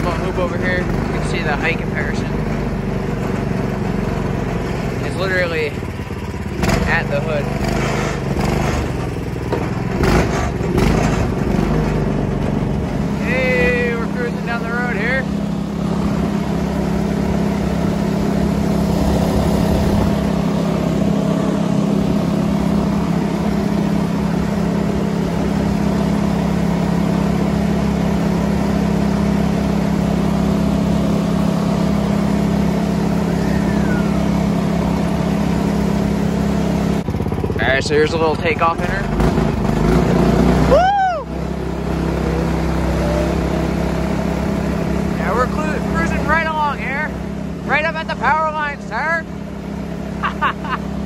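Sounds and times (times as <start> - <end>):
golf cart engine running: 0.0 - 51.0.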